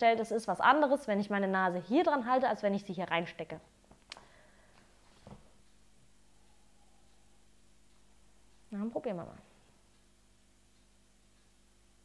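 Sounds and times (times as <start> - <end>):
low hum: 3.6 - 12.0
faint click: 4.0 - 4.9.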